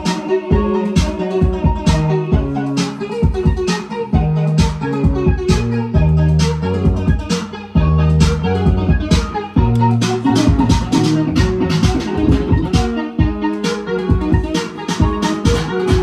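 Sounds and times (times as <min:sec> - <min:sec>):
drum machine beat: 0:00.0 - 0:16.0
high synth parts: 0:00.0 - 0:16.0
synth bass line: 0:00.0 - 0:16.0.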